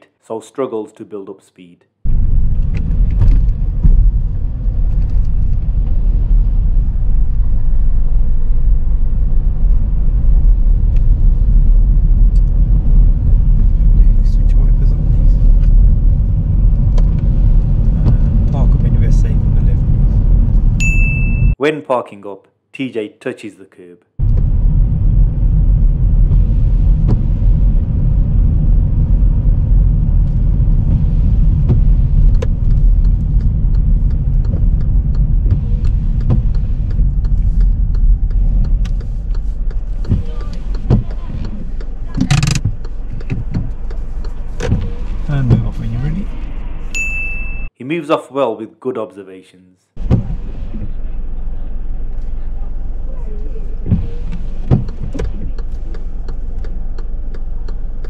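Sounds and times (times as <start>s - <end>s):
car engine and tyre noise: 2.1s - 21.6s, 24.2s - 47.7s, 50.0s - 58.0s.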